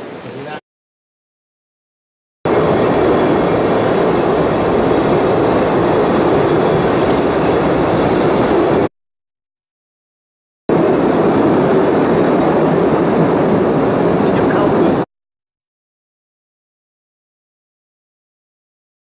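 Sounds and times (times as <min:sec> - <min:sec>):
train rattling on rails: 0:02.5 - 0:08.9, 0:10.7 - 0:15.1.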